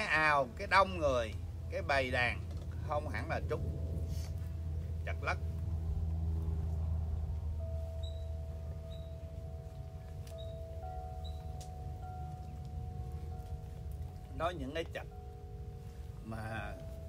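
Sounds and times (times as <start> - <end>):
low rumble: 0.0 - 17.0
soft chime-like ringing tones: 0.0 - 17.0.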